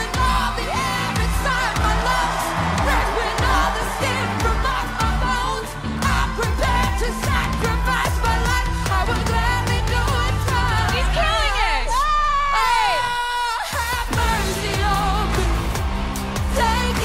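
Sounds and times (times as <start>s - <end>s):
person singing pop song: 0.0s - 17.0s.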